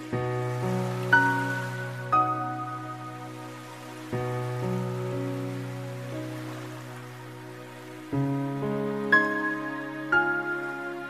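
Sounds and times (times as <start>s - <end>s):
slow soft background music: 0.0s - 11.0s.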